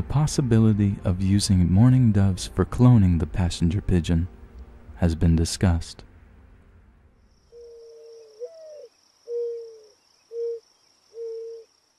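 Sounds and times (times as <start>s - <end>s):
dove cooing: 7.6s - 11.8s.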